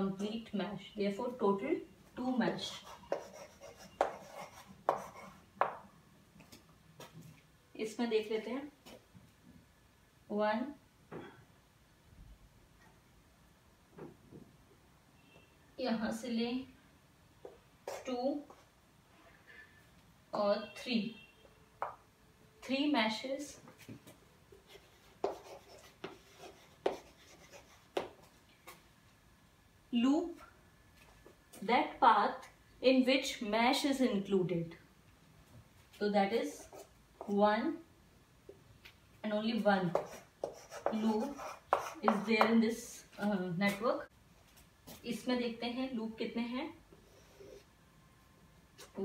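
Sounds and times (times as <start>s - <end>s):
chalk scratching: 2.6s - 5.4s, 17.9s - 18.6s, 24.7s - 28.2s, 36.4s - 36.9s, 39.9s - 42.5s
chalk tapping on a chalkboard: 2.6s - 5.8s, 25.2s - 28.2s, 39.9s - 42.6s.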